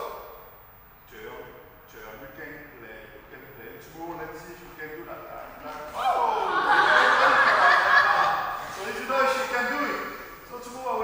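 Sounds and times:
voices: 1.1s - 11.0s
people laughing: 5.7s - 9.2s.

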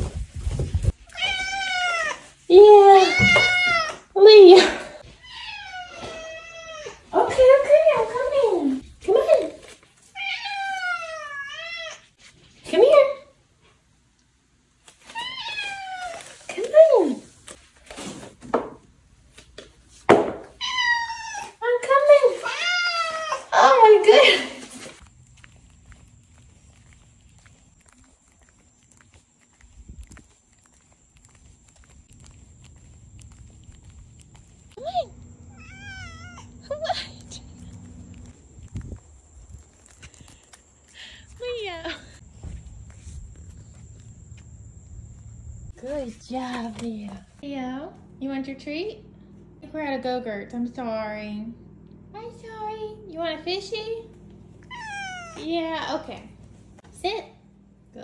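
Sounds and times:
cat meowing: 1.1s - 2.2s, 5.2s - 7.0s, 35.0s - 36.6s, 54.6s - 55.5s
footsteps on concrete: 24.1s - 47.5s.

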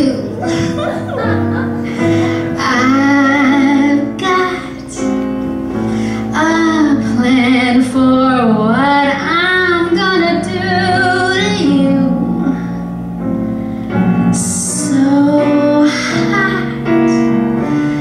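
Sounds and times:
instrumental backing: 0.0s - 18.0s
woman singing with vibrato: 2.1s - 5.1s, 6.3s - 12.6s, 14.4s - 17.2s.

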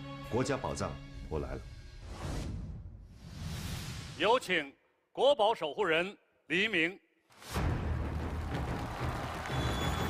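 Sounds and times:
audience applause: 7.9s - 10.0s.

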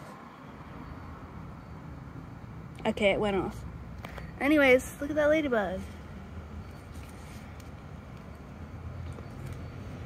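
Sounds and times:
low steady outdoor rumble: 0.0s - 10.0s.

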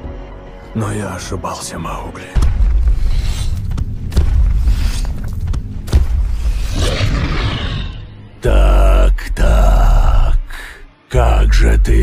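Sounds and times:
tiger growling: 6.4s - 8.2s.

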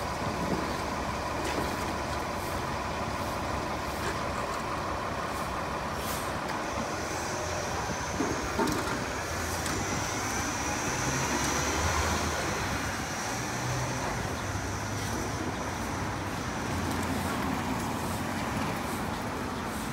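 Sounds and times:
bus engine moving off: 0.0s - 19.9s
cars driving past: 6.2s - 19.9s.

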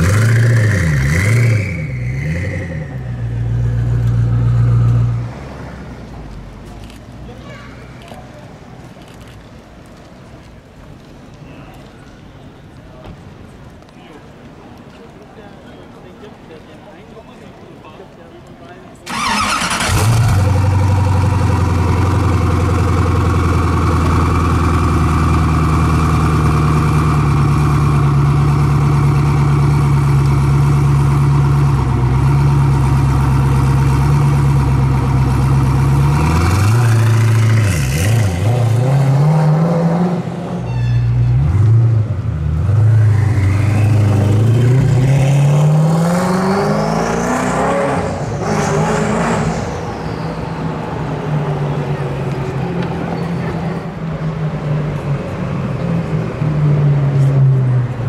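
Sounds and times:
car accelerating away: 0.0s - 5.9s, 19.1s - 40.6s, 41.3s - 53.4s
sports car engine idling and revving: 0.0s - 6.1s, 19.8s - 40.6s.

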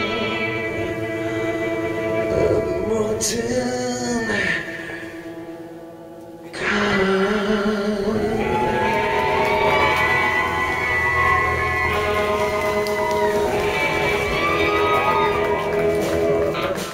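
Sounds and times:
bass guitar: 0.0s - 16.9s
electric guitar: 0.0s - 16.9s
singer holding long notes: 0.0s - 16.9s
drums: 8.5s - 16.9s.

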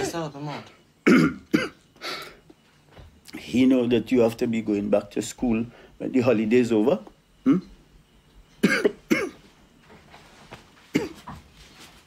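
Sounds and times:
man coughing: 1.0s - 1.8s, 8.6s - 9.4s, 10.9s - 11.4s.

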